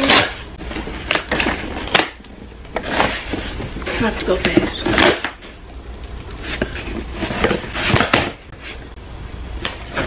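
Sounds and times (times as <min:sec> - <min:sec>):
cardboard scraping and tapping: 0:06.4 - 0:08.8.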